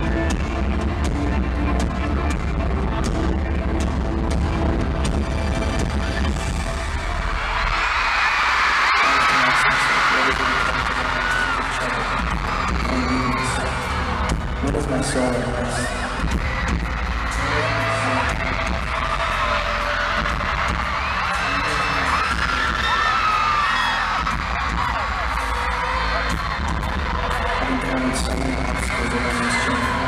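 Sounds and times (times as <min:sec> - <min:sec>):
fans screaming: 0:00.0 - 0:30.0.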